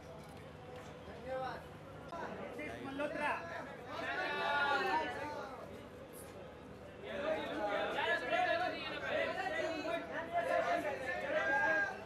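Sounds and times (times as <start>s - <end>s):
hubbub of chatter: 0.0s - 12.0s.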